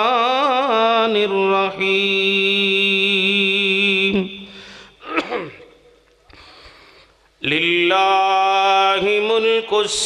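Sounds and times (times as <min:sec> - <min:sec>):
man chanting: 0:00.0 - 0:04.5, 0:07.4 - 0:10.0.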